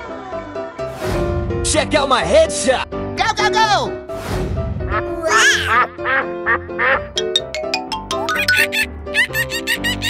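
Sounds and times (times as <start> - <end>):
bouncy background music: 5.1 - 10.0.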